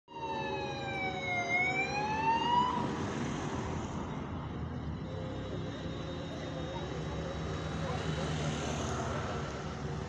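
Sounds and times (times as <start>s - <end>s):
siren wail: 0.1s - 3.1s
passing vehicles: 0.1s - 10.0s.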